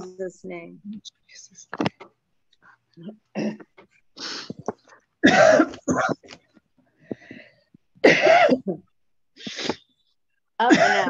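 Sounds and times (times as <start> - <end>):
woman coughing: 3.3 - 3.7, 5.2 - 6.3, 8.0 - 8.9, 10.6 - 11.0.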